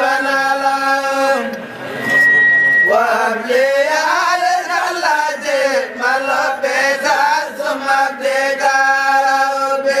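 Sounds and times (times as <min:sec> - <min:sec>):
voices chanting melodically: 0:00.0 - 0:10.0.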